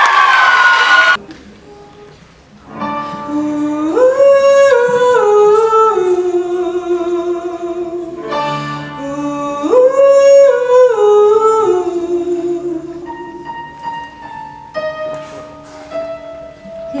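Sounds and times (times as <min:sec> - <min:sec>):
woman singing wordlessly: 0:03.2 - 0:08.2, 0:08.9 - 0:13.4.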